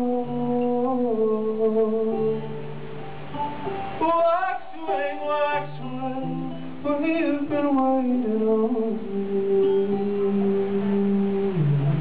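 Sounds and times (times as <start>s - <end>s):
man singing: 0.0s - 2.6s, 4.0s - 12.0s.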